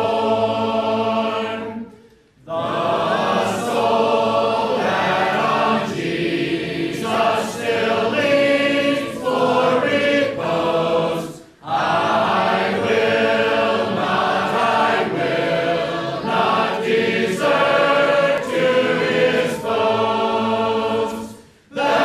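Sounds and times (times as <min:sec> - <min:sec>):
congregation singing a hymn: 0:00.0 - 0:22.0.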